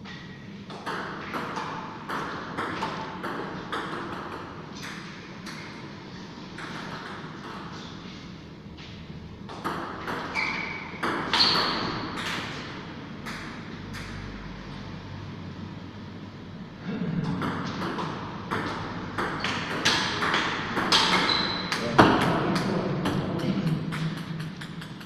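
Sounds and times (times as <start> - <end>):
short high squeaks: 10.3 - 12.0
table tennis ball clicks: 23.1 - 25.0.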